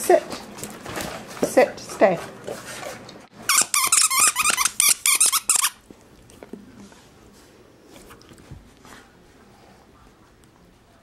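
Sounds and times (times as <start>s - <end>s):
squeaky dog toy: 3.5s - 5.8s.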